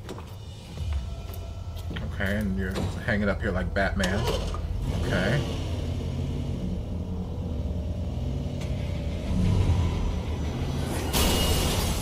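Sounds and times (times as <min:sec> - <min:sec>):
van engine rumbling: 0:00.0 - 0:12.0.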